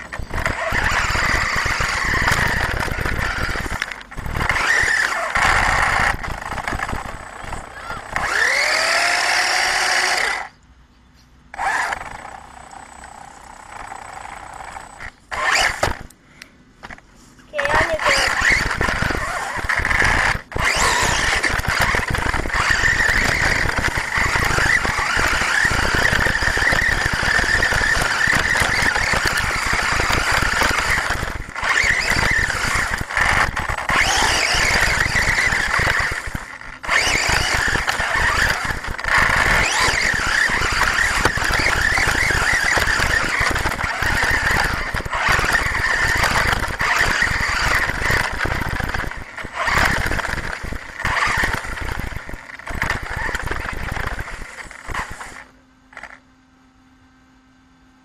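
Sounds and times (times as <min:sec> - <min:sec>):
electric motor whining: 0:00.0 - 0:10.6, 0:11.5 - 0:16.1, 0:17.6 - 0:56.2.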